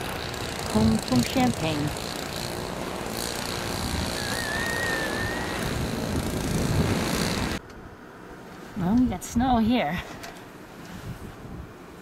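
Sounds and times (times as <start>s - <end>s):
high wavering whistle: 4.1s - 5.9s.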